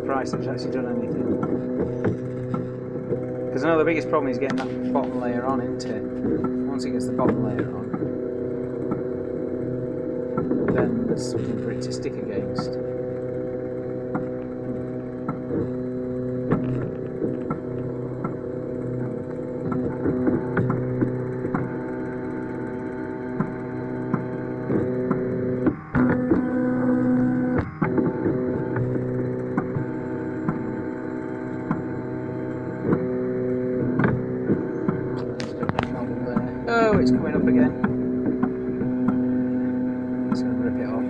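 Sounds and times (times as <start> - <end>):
stepper motors whining: 0.0 - 41.0.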